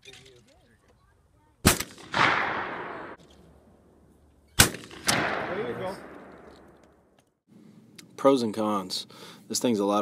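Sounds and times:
shotgun blast echo: 1.6s - 3.2s, 4.6s - 6.8s.

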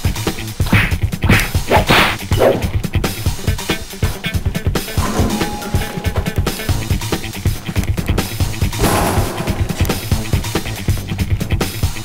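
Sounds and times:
funk music with drum beat: 0.0s - 12.0s
punch swishes and whacks: 0.7s - 2.6s.

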